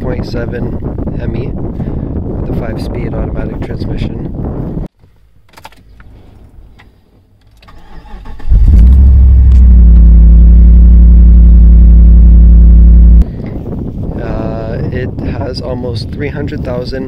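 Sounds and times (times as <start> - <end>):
engine starter cranking: 7.5 - 9.7.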